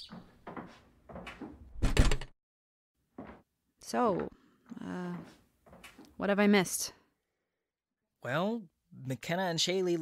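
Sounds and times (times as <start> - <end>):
door shutting with a thud: 0.1 - 2.3.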